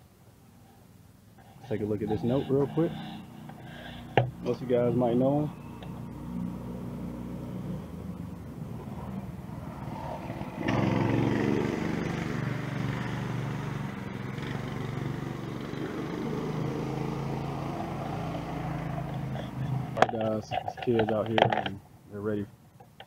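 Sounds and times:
engine running: 0:01.5 - 0:20.2.

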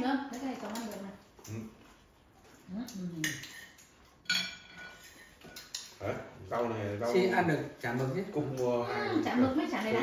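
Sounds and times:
utensils clinking against dishes: 0:00.3 - 0:08.8.

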